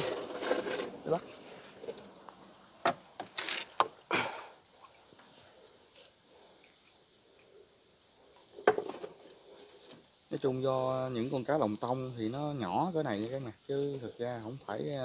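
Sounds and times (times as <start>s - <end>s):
night insects chirring: 0.0s - 15.0s.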